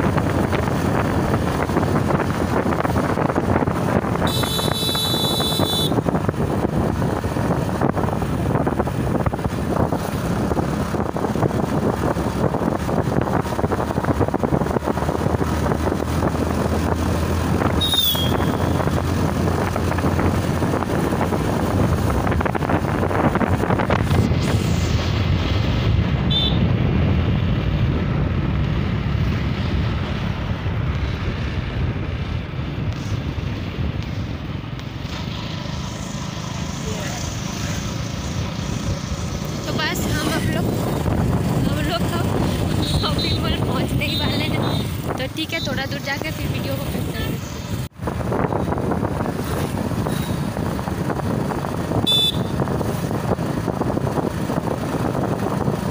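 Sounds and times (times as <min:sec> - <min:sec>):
motorbike engine: 0:00.0 - 0:55.9
traffic passing: 0:00.0 - 0:55.9
wind rush on microphone: 0:00.0 - 0:55.9.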